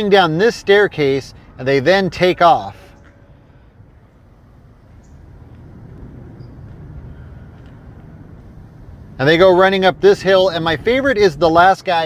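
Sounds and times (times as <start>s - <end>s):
faint low rumble: 2.9s - 11.6s.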